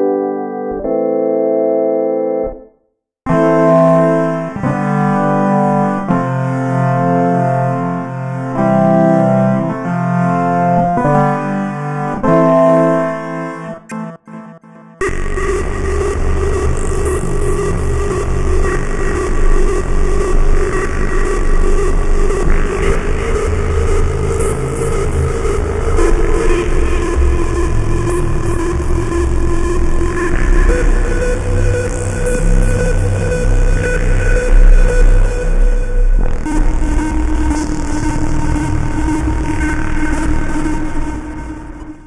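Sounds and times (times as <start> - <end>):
noisy synthesizer pad: 3.3 - 42.0.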